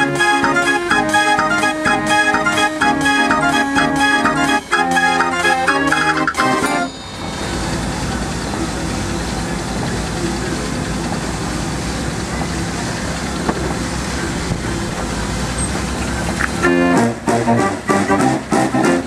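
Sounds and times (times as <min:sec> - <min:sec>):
street organ playing: 0:00.0 - 0:11.0, 0:13.2 - 0:19.0
low rumble of engines: 0:00.0 - 0:19.0
distant voices: 0:06.0 - 0:16.7.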